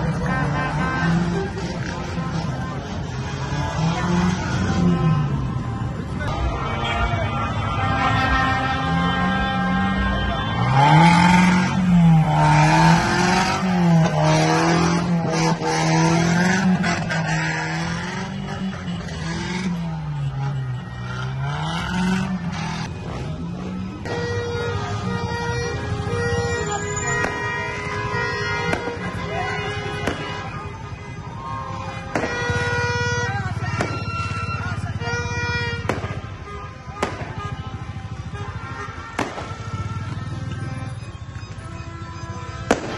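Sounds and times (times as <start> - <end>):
street traffic: 0.0 - 42.9.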